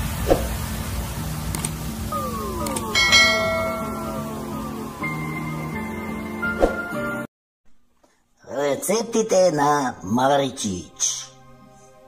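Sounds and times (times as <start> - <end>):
small clicks: 1.5 - 1.8
falling swooping tones: 1.9 - 5.8
electronic music: 1.9 - 5.9
bright bell-like ding: 3.0 - 4.4.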